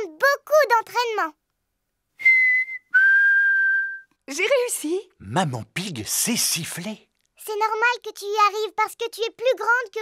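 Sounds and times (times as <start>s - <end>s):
mouth whistling steady notes: 2.2s - 4.2s.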